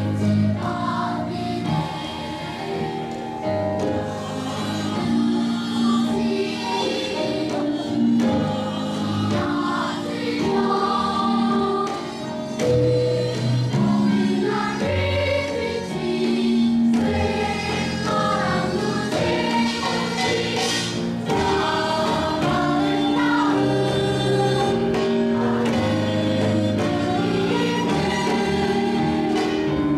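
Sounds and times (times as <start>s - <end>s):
children's choir singing: 0.0s - 29.9s.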